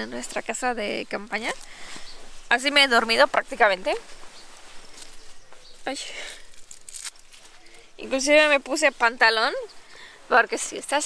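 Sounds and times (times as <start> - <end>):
rustling of clothing and bedding: 0.0 - 11.0.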